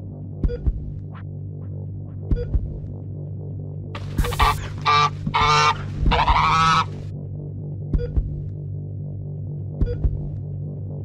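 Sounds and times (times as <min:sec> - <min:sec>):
goose honking: 0:04.0 - 0:07.0.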